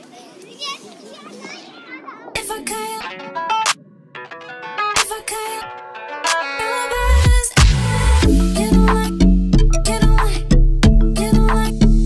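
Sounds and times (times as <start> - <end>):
children chattering: 0.0 - 3.5.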